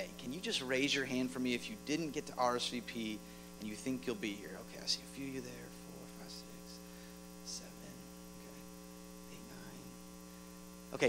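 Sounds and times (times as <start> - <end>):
electrical mains hum: 0.0 - 11.0
faint hiss: 0.0 - 11.0.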